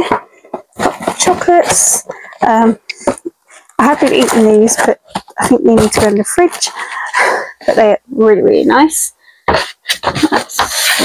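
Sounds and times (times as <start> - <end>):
scratchy rubbing and rustling: 0.0 - 8.0, 8.7 - 11.0.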